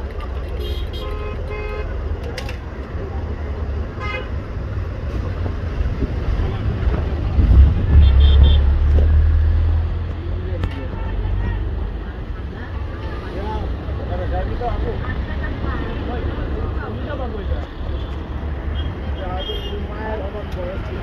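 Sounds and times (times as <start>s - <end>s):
low traffic rumble: 0.0s - 21.0s.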